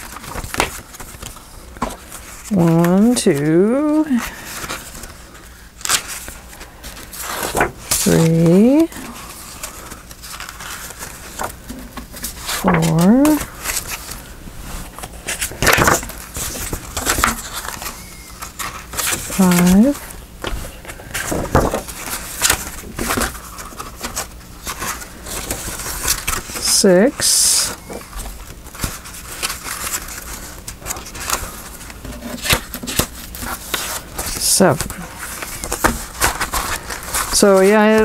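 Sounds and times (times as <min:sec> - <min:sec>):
paper rustling and tapping: 0:00.0 - 0:03.1, 0:04.5 - 0:08.1, 0:09.6 - 0:14.2, 0:14.9 - 0:26.7, 0:27.9 - 0:38.0
person murmuring: 0:12.6 - 0:13.4.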